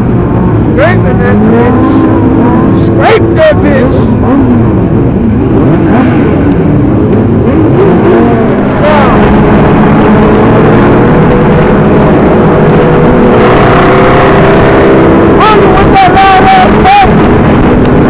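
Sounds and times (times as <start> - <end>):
motorcycle engines at speed: 0.0 - 18.0
wind noise on microphone: 16.7 - 18.0.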